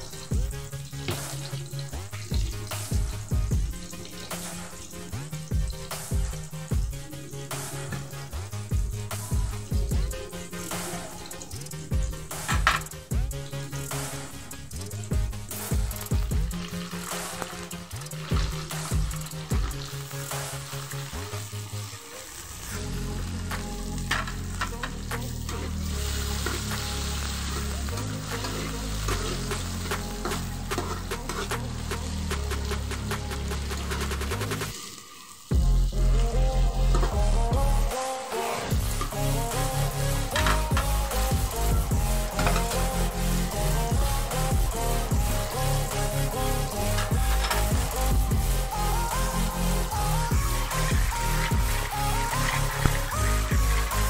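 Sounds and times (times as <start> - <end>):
background music with bass line: 0.0 - 54.0
vegetables sizzling in hot oil: 0.0 - 54.0.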